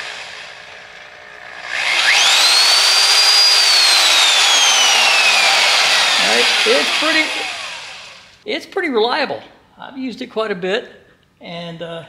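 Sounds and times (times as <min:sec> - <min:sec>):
electric drill whining: 0:00.0 - 0:08.4.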